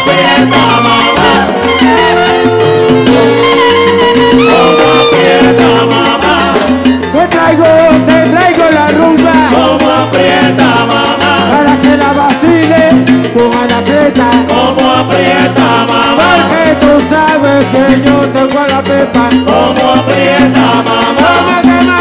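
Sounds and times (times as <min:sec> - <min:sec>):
salsa orchestra playing: 0:00.0 - 0:22.0.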